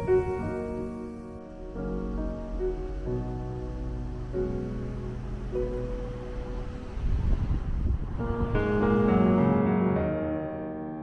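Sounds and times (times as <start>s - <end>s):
wind buffeting microphone: 0.0s - 9.6s
soft background music: 0.0s - 11.0s.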